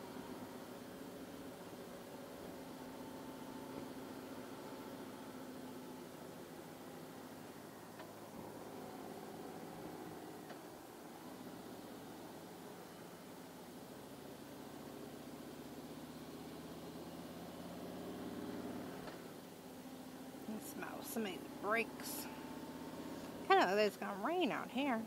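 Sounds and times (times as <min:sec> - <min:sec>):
wind and road noise: 0:00.0 - 0:25.0.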